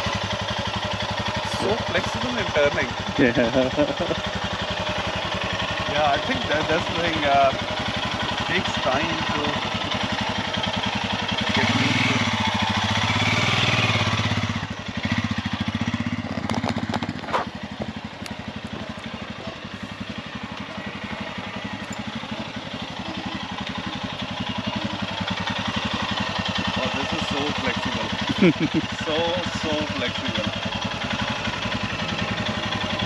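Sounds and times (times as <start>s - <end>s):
motorcycle engine: 0.0s - 33.0s.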